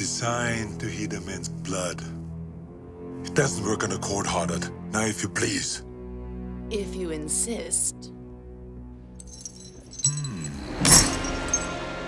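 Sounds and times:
film score held notes: 0.0 - 12.0
necklace jingling: 9.1 - 11.9.

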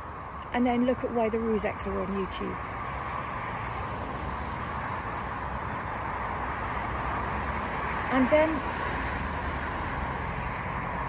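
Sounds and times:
road traffic roar: 0.0 - 11.0.

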